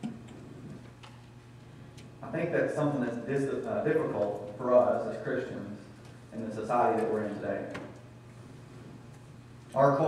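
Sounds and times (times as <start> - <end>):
steady low hum: 0.0 - 10.0.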